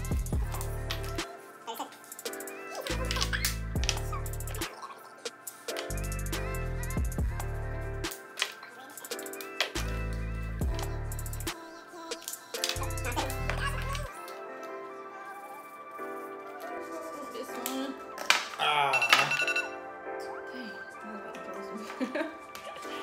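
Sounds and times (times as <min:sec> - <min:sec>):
deep bass line: 0:00.0 - 0:01.0, 0:06.2 - 0:08.0.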